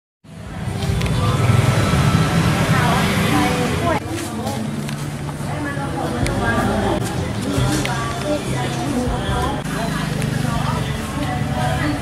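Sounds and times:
faint voices: 0.3s - 12.0s
traffic rumble: 0.3s - 12.0s.

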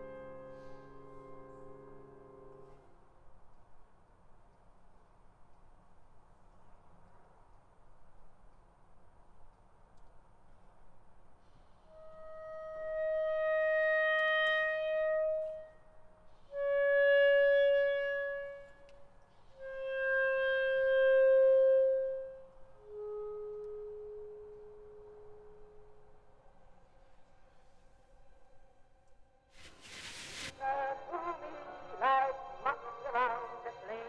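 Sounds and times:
clarinet long held notes: 0.0s - 3.0s, 11.9s - 27.6s.

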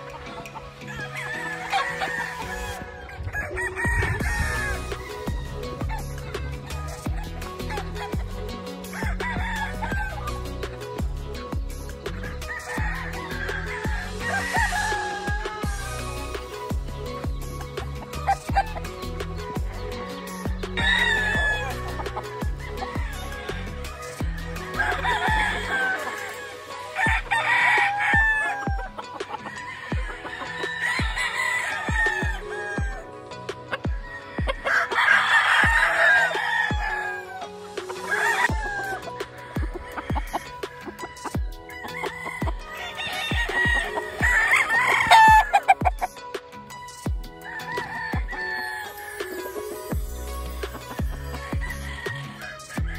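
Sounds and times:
background music with beat: 0.0s - 52.9s
roosters crowing: 0.0s - 52.9s.

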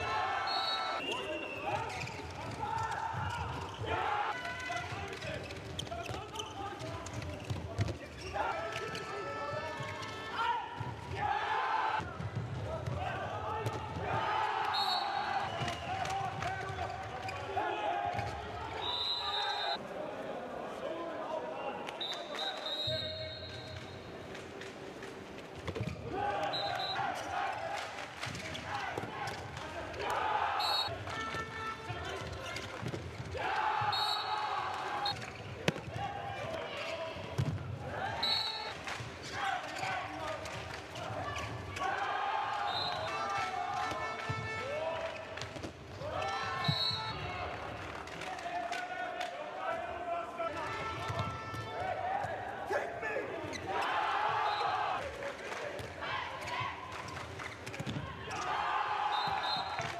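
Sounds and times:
players shouting: 0.0s - 5.3s, 8.2s - 23.9s, 26.0s - 45.3s, 46.0s - 57.1s, 57.8s - 59.9s
ball bouncing on court: 35.2s - 36.0s, 37.2s - 37.8s, 51.0s - 52.4s.

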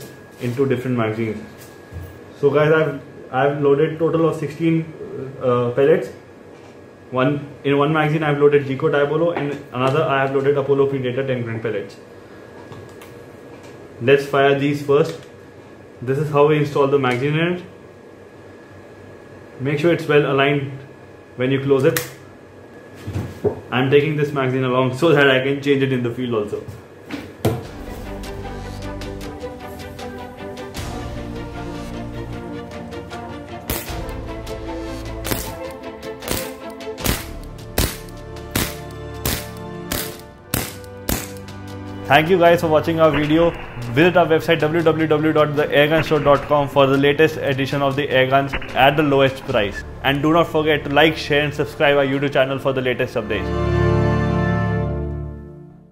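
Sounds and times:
background music: 27.6s - 55.9s
pellet pistol shots: 33.7s - 34.1s, 35.3s - 41.5s.

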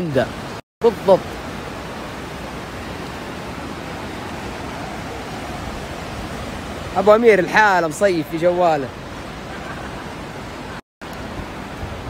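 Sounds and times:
river water rushing: 0.0s - 12.0s.

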